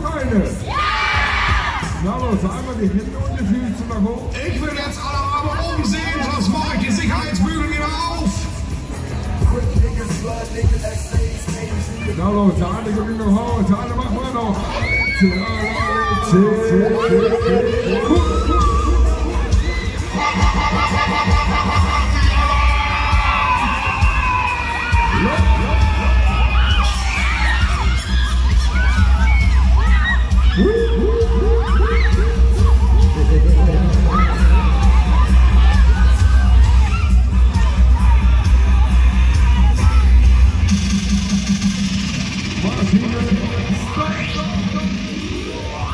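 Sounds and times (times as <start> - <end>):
ride music with heavy bass: 0.0 - 45.9
indistinct voices: 4.3 - 45.9
pulsing low hum from loudspeaker: 15.5 - 23.4, 25.0 - 45.9.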